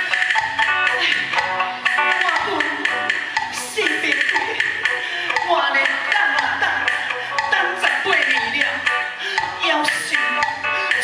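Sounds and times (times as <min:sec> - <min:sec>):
backing music with percussion: 0:00.0 - 0:11.0
person singing into a microphone: 0:02.0 - 0:11.0.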